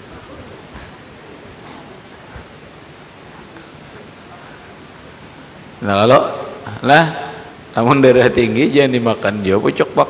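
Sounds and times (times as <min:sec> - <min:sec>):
faint murmurs: 0:00.0 - 0:05.8
background hiss: 0:00.0 - 0:10.0
man speaking through microphone: 0:05.8 - 0:10.0.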